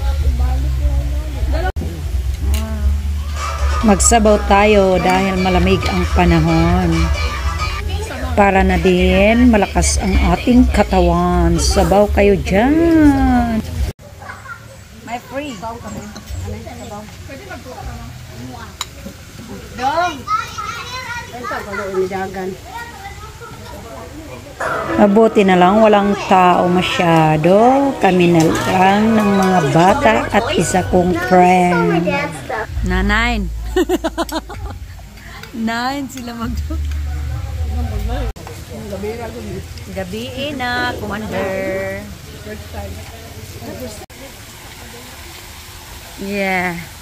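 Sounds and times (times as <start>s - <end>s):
low hum and hiss: 0.0s - 13.9s, 22.6s - 47.0s
children talking and calling out: 2.8s - 11.1s, 13.0s - 16.5s, 19.6s - 32.8s.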